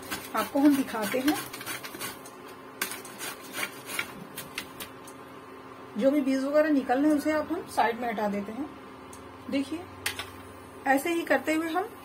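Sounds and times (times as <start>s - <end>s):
gourd scraping on grater: 0.0s - 4.6s.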